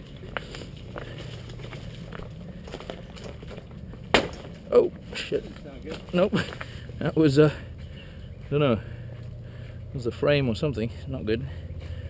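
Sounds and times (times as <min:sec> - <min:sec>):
bike rolling down stone steps: 0:00.0 - 0:04.7.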